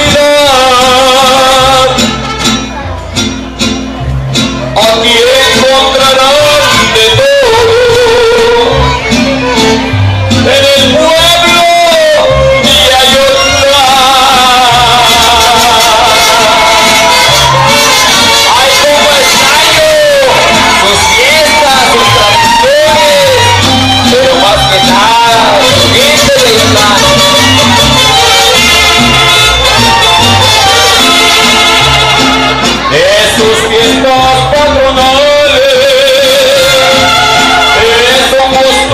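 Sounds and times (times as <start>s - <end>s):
trumpet: 0.0s - 3.6s, 4.8s - 38.9s
guitars: 0.0s - 38.9s
violins: 6.5s - 34.9s, 36.0s - 38.9s
pulsing bass line: 12.2s - 38.9s.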